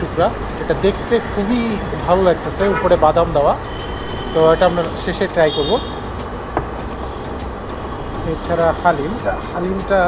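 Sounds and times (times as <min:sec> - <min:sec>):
background music: 0:00.0 - 0:10.0
street traffic rumble: 0:00.0 - 0:10.0.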